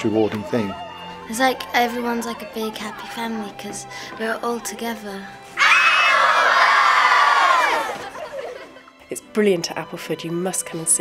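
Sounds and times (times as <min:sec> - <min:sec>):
children cheering and shouting: 0:05.6 - 0:08.6.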